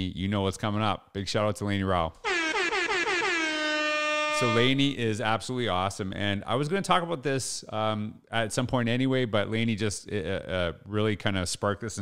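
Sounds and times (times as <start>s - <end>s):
air horn blast: 2.2s - 4.8s.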